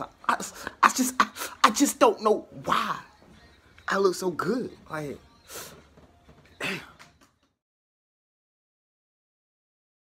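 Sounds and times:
man clearing throat: 6.6 - 7.0.

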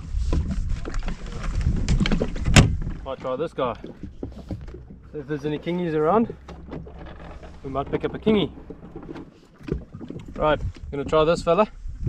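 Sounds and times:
wind rumble on microphone: 0.0 - 3.2, 9.6 - 12.0
knocks and clatter of handling: 0.8 - 11.5.

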